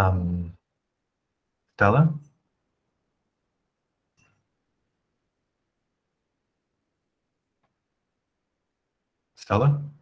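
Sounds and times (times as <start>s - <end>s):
man speaking: 0.0s - 0.6s, 1.7s - 2.4s, 9.3s - 10.0s.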